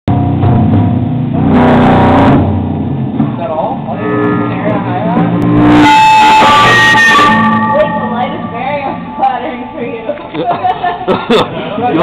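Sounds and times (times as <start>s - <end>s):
drum kit: 0.1s - 9.4s
electric guitar through amplifier: 0.1s - 10.6s
cymbals: 0.2s - 10.2s.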